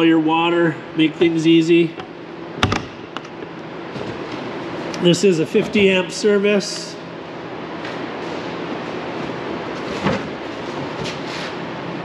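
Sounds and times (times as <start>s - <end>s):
machinery or ventilation rush: 0.0s - 12.0s.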